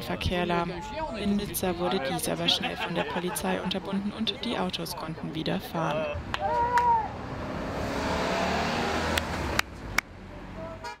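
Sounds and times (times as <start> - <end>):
car driving past: 6.9 - 10.8.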